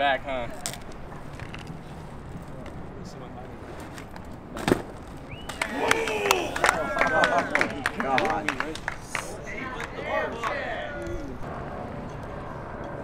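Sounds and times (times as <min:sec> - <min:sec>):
bike tyres rolling on concrete: 0:00.0 - 0:09.4
bike hitting the ground: 0:03.8 - 0:05.3
onlookers shouting and whooping: 0:05.5 - 0:08.4, 0:09.0 - 0:11.4.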